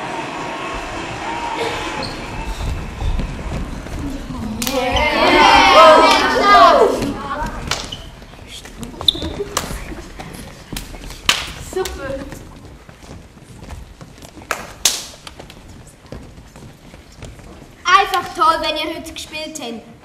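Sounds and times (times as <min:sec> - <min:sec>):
thumps and knocks on wooden stage: 0:02.2 - 0:05.2.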